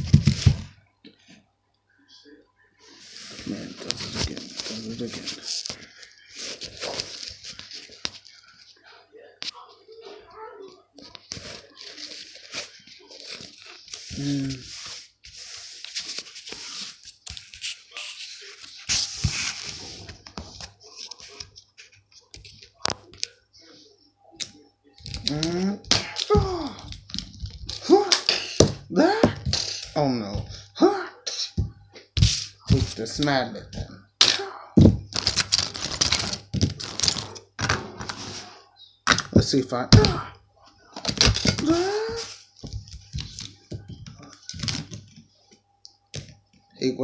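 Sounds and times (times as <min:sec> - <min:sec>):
handling plastic figures: 0:03.2 - 0:23.4.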